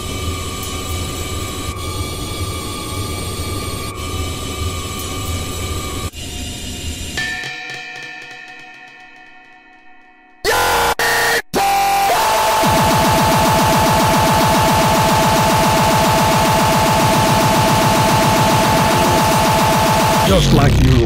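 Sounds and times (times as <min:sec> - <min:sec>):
ringing bell-like chord: 0:07.2 - 0:10.4
steady high tone: 0:07.2 - 0:21.0
harsh distorted noise: 0:10.5 - 0:21.0
fast buzzing pulse: 0:12.1 - 0:21.0.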